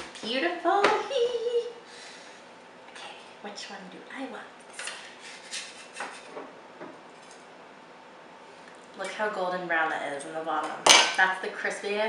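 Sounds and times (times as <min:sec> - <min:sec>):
spatula scraping baking sheet: 0:04.8 - 0:06.5.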